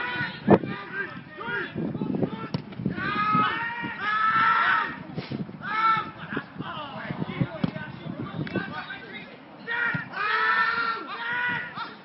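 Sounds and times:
voices shouting: 0.0 - 7.6, 8.3 - 12.0.

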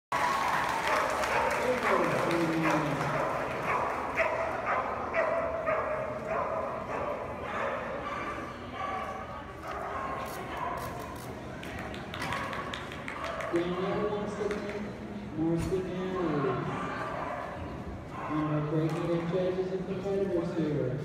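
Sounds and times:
people's voices: 0.7 - 21.0
dog barking in hall: 0.8 - 11.2, 12.2 - 13.6, 16.5 - 18.7.

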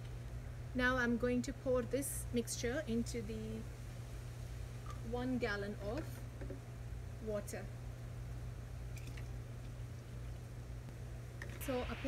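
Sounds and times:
steady low hum: 0.0 - 12.0
liquid trickling into jug: 8.9 - 9.4.

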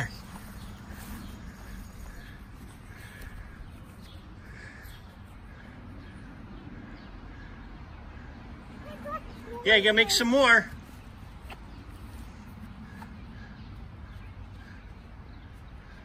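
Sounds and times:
faint bird calls: 0.0 - 9.6
outdoor background hum: 0.0 - 16.0.

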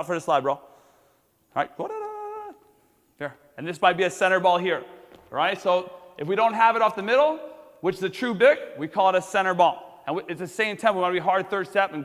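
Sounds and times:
man speaking: 1.5 - 12.0.

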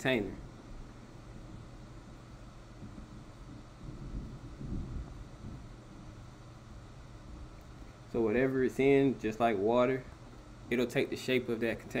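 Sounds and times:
soft low rumbles: 0.2 - 10.7.

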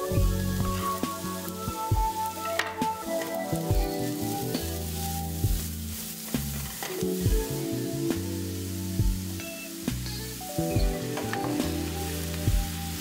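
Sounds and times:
background music: 0.0 - 13.0
onion sizzling in a frying pan: 0.0 - 13.0.

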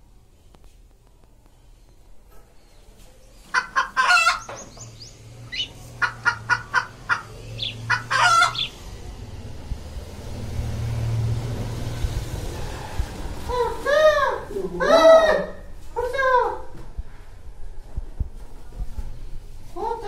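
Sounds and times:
chickens clucking: 2.9 - 9.2
rooster crowing: 6.3 - 8.8.

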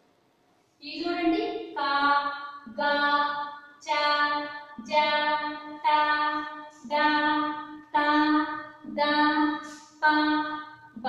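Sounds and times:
woman chanting syllables: 0.8 - 11.0.

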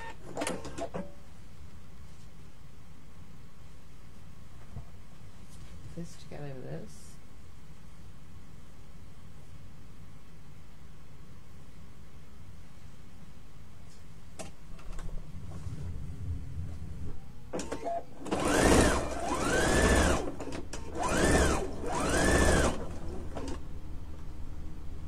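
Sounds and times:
sewing machine stitching: 17.6 - 23.6.

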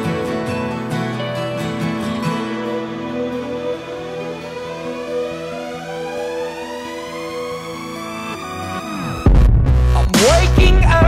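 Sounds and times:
background music held notes: 0.0 - 11.0
tone sweeping upward: 2.3 - 9.3.

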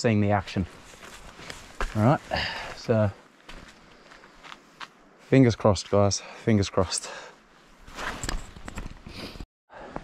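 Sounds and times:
footsteps on leaves and twigs: 0.5 - 5.0.

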